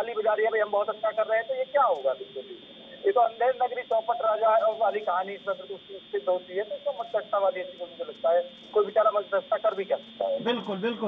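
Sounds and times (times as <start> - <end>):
man talking over phone line: 0.0 - 11.0.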